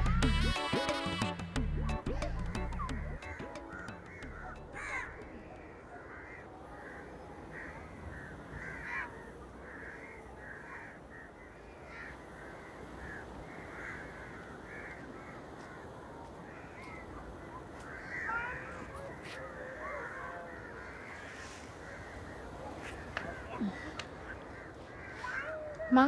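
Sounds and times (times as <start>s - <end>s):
crows cawing: 3.2s - 26.0s.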